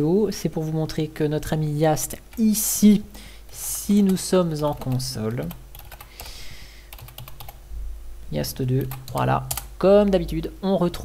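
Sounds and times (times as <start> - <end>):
computer keyboard typing: 3.9 - 6.2, 6.9 - 7.6, 8.8 - 9.7.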